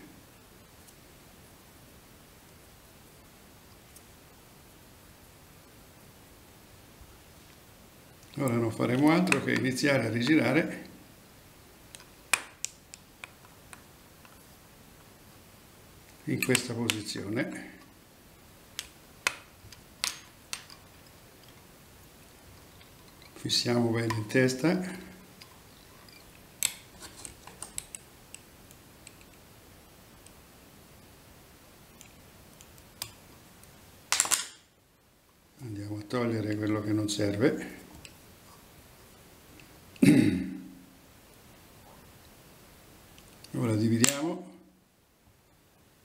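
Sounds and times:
man speaking: 0:08.4 - 0:11.0, 0:16.2 - 0:17.8, 0:23.4 - 0:25.2, 0:35.6 - 0:37.9, 0:43.5 - 0:44.6.

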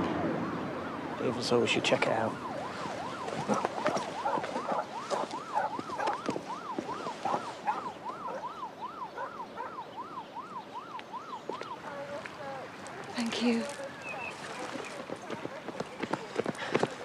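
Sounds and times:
emergency siren wailing: 0:00.0 - 0:15.6.

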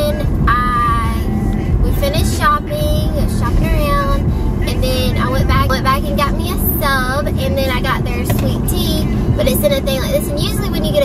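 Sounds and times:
car cabin road drone: 0:00.0 - 0:11.0.

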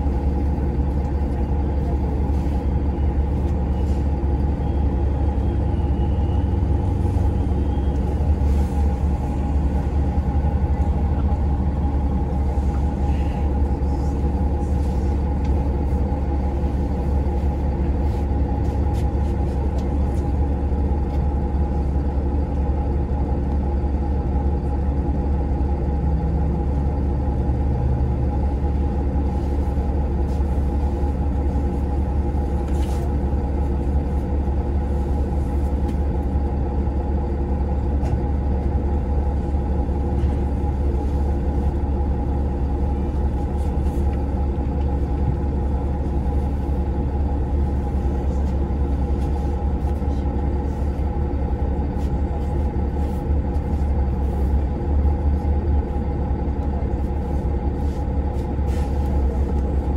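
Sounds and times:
bus engine idling: 0:00.0 - 0:59.9.

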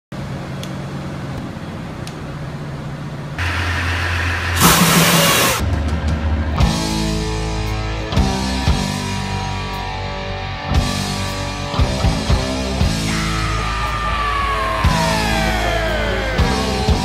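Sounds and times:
engine-room machinery humming: 0:00.1 - 0:06.6
loud rush of noise: 0:03.4 - 0:06.6, 0:13.1 - 0:17.0
rock music: 0:03.4 - 0:17.0.

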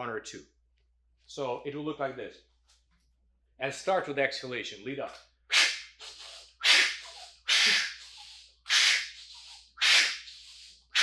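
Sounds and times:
man's sharp forceful breaths: 0:05.5 - 0:11.0.

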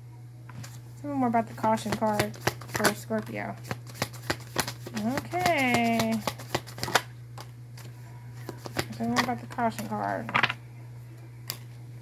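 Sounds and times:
cards being shuffled: 0:01.7 - 0:10.6.

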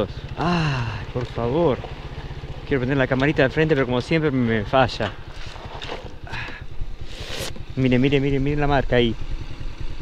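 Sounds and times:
motorcycle engine putter: 0:00.1 - 0:06.7.

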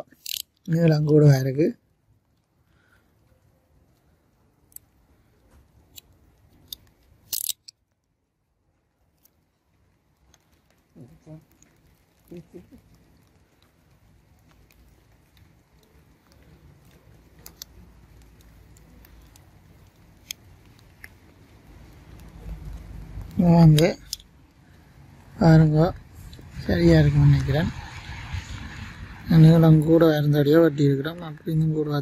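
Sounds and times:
crisp crackle of plant stem: 0:09.0 - 0:32.0.

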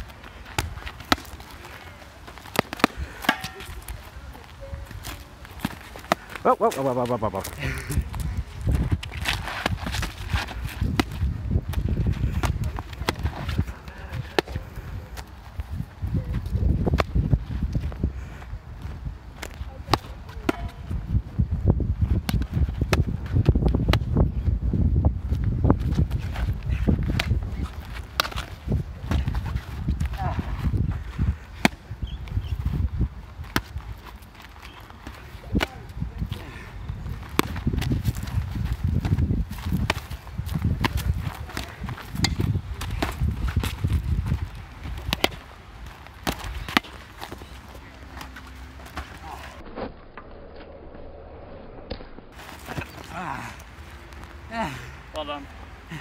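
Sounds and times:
practice swords knocking: 0:02.6 - 0:03.9
low rumble: 0:49.5 - 0:52.4.

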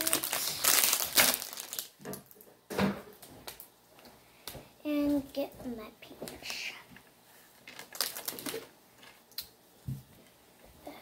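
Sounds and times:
plastic packaging crinkling: 0:00.0 - 0:02.4, 0:07.6 - 0:09.2.

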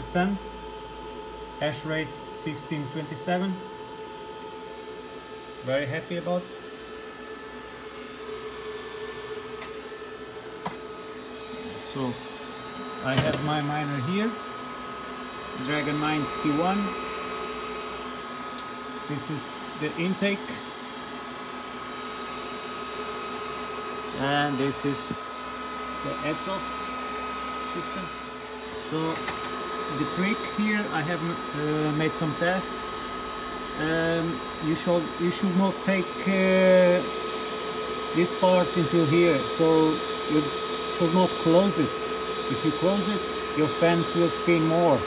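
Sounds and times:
cooling fans humming: 0:00.0 - 0:45.0.

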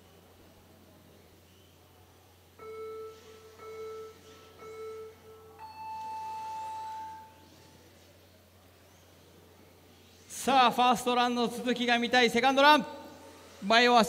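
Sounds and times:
electronic countdown beeps: 0:02.6 - 0:07.7.

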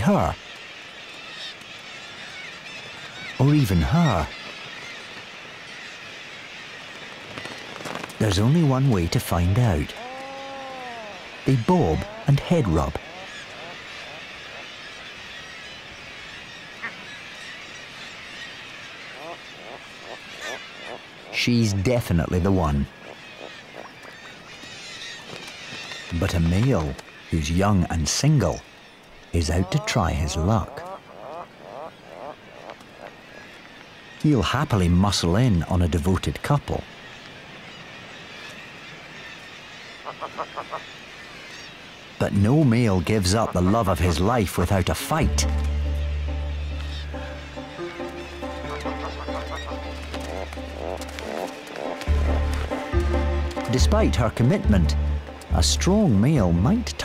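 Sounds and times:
seabirds calling: 0:00.0 - 0:57.0
puffin calling short notes: 0:45.0 - 0:56.6.

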